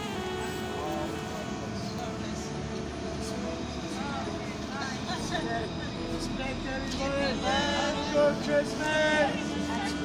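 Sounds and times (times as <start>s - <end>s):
city traffic rumble: 0.0s - 10.0s
indistinct voices: 0.0s - 10.0s.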